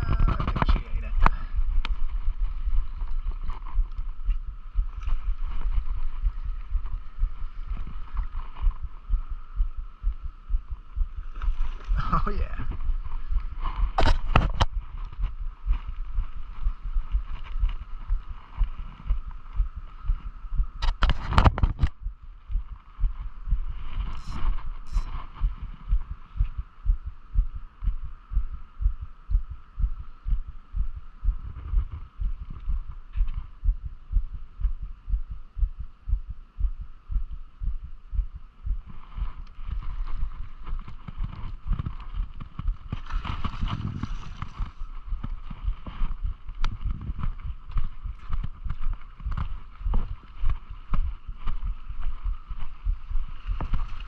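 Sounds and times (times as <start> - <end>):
steady background noise: 0.0 - 54.0
wind buffeting microphone: 0.0 - 54.0.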